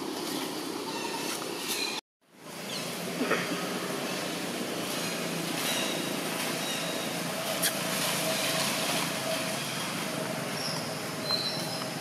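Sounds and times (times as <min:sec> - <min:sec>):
distant traffic rush: 0:00.0 - 0:12.0.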